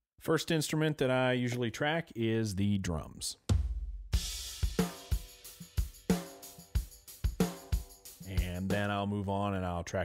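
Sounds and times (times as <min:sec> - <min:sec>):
kick and snare drum beat: 0:03.5 - 0:08.9.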